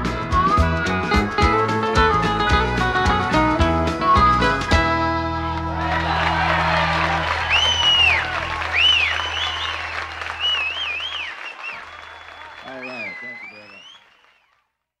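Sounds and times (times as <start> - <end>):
audience applauding and whistling: 5.1 - 14.7.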